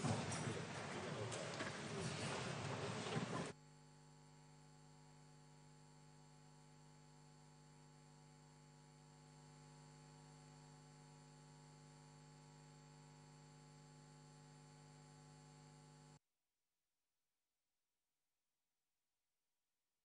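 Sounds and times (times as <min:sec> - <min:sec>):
faint electrical hum: 0:00.0 - 0:03.6.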